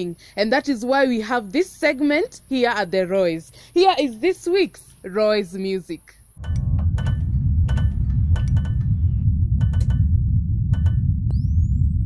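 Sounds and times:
deep rumble: 0:06.4 - 0:12.0.

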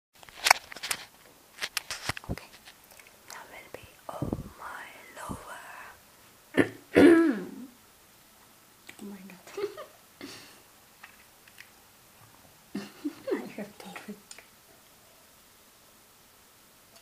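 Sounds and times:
breathy whispery vocal noises: 0:03.3 - 0:06.0.

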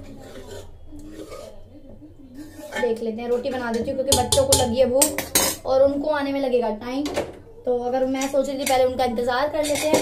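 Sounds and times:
utensil scraping cooking pot: 0:00.0 - 0:01.7, 0:02.3 - 0:05.7, 0:09.5 - 0:10.0.

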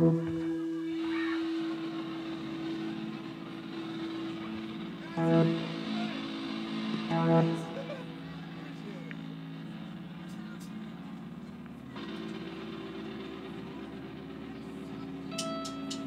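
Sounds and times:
faint voices: 0:00.0 - 0:16.0
low sustained instrument tones: 0:00.0 - 0:16.0.

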